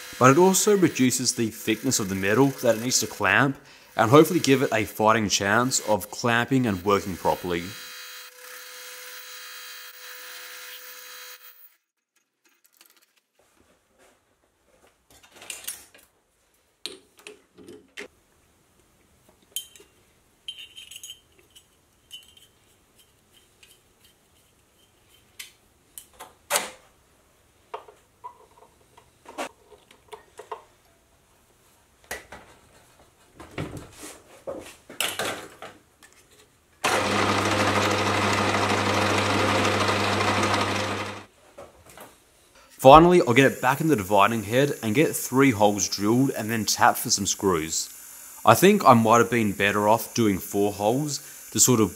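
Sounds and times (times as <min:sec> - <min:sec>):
lathe running with low hum: 0:36.9 - 0:41.3.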